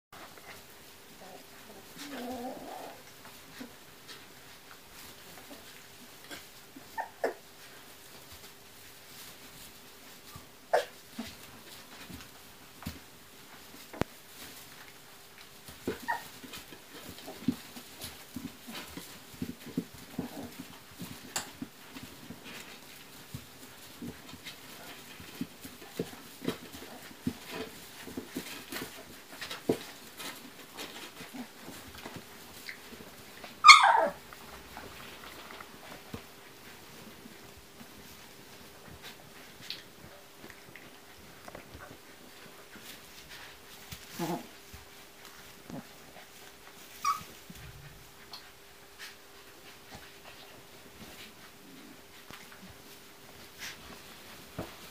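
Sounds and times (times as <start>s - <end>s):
puppies rustling in hay: 0.2s - 54.9s
puppy yelp: 6.8s - 7.4s, 10.7s - 11.0s, 15.8s - 16.5s, 33.6s - 34.2s, 46.9s - 47.4s.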